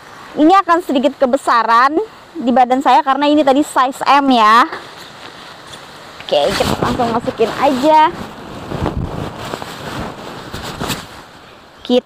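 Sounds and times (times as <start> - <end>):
fabric rustling and swishing: 4.6 - 11.4.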